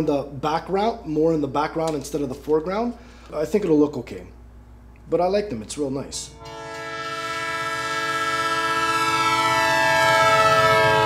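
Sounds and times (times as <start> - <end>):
train horn chord: 6.3 - 11.0.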